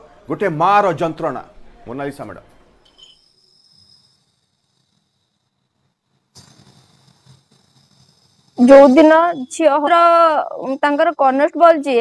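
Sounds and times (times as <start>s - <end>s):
faint high-pitched tone: 8.6s - 11.6s.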